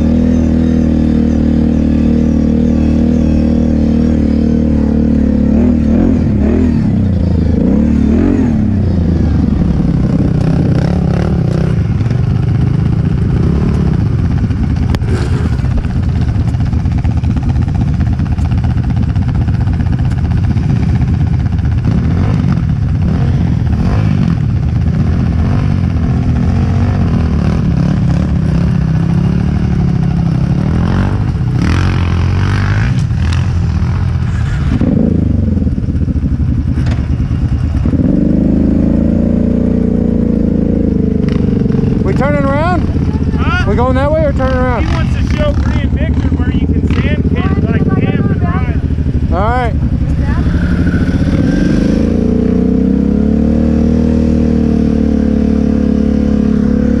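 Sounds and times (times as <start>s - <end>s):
off-road vehicle engines: 0.0s - 57.0s.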